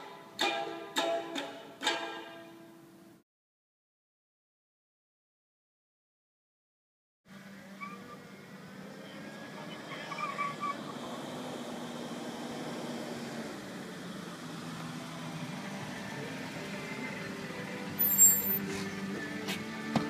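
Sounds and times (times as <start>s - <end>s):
car engine approaching: 7.3s - 19.9s.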